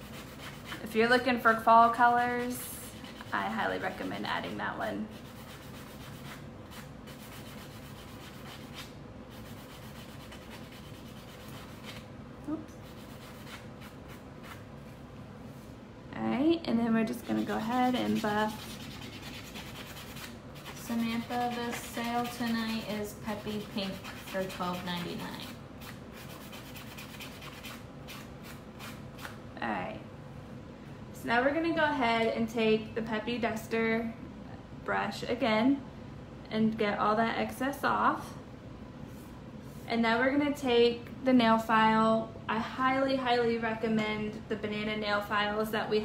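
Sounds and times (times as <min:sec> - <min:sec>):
nail buffer rubbing: 0:00.0 - 0:00.8, 0:02.9 - 0:03.6, 0:05.1 - 0:12.0, 0:12.8 - 0:14.6, 0:17.2 - 0:29.4.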